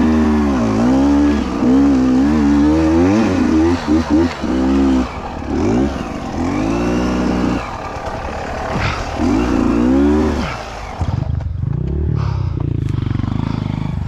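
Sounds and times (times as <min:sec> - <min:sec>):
dirt bike engine revving: 0:00.0 - 0:14.0.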